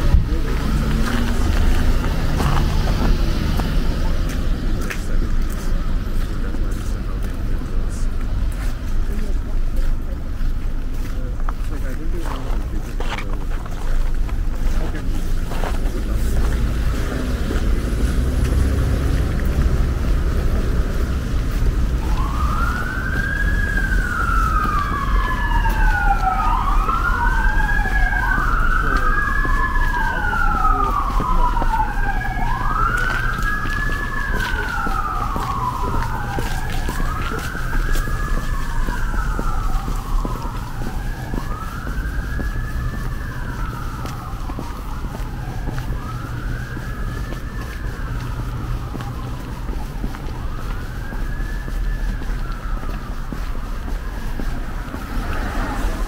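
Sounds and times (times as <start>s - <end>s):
city traffic rumble: 0.0s - 56.0s
emergency siren wailing: 0.0s - 56.0s.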